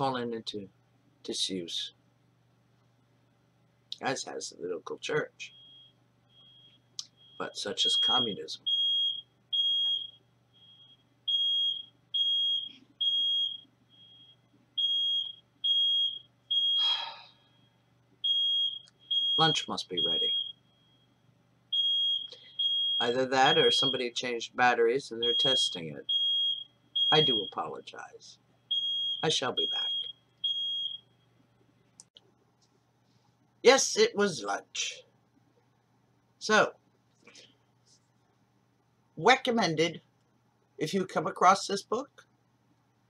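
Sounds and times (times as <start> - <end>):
smoke alarm beeping: 5.5 - 24.1, 25.2 - 27.7, 28.7 - 31.2.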